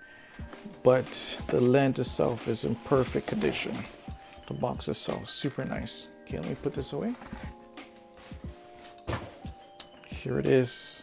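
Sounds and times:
soft background music: 0.0 - 11.0
cardboard box knocks: 9.1 - 9.5.

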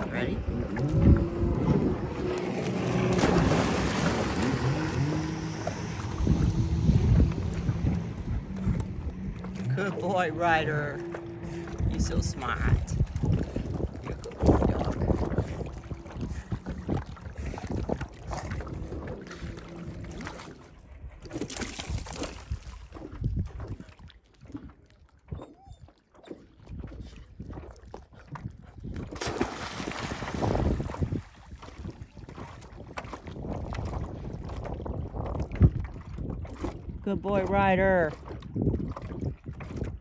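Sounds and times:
wind on microphone: 0.0 - 25.8, 26.5 - 40.0
water lapping on rocky shore: 0.0 - 40.0.

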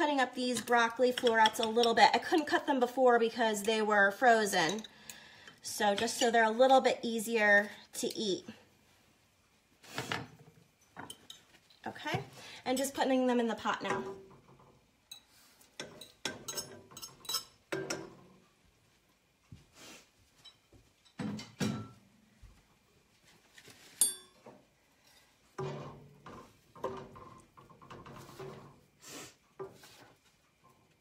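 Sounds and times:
sharp ringing clink: 24.0 - 24.4.

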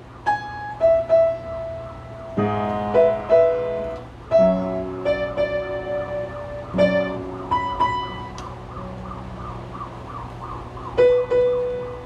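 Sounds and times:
grand piano notes: 0.0 - 9.9.

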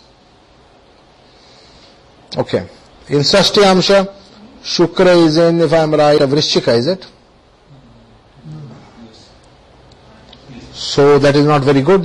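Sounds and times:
faint room hiss: 0.0 - 12.0
man speaking: 2.3 - 9.4, 10.1 - 12.0.

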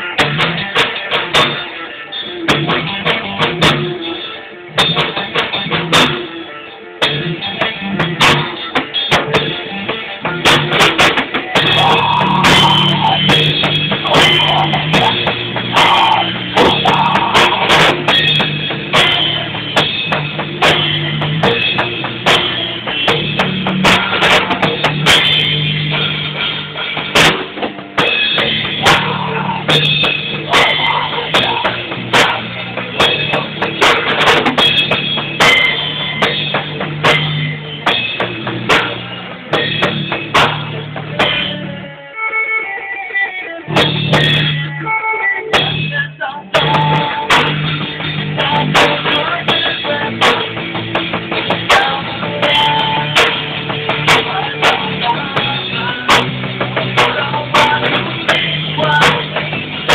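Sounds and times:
drum kit steady rhythm: 0.0 - 59.9
rock band guitar: 0.0 - 59.9.

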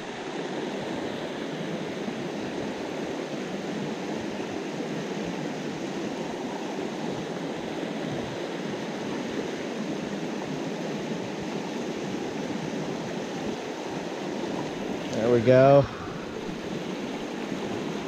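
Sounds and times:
stream rushing over rocks: 0.0 - 18.0.

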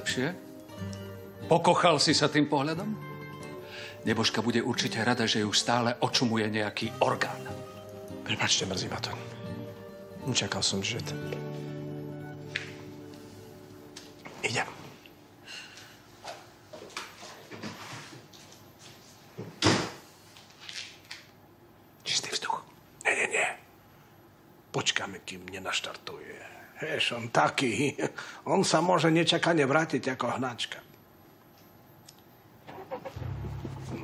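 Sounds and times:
footsteps walking: 12.4 - 14.5, 15.7 - 19.5, 33.4 - 34.0
car engine starting and idling: 32.7 - 34.0.

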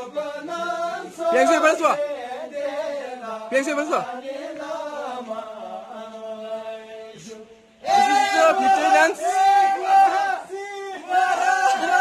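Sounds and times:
voices chanting melodically: 0.0 - 12.0.

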